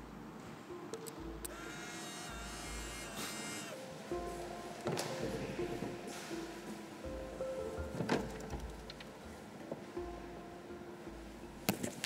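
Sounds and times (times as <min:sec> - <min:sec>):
camera motor whirring: 0:01.4 - 0:03.8.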